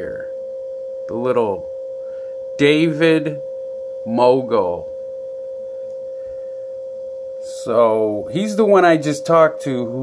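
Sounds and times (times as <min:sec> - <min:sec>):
steady pure tone: 0:00.0 - 0:10.0.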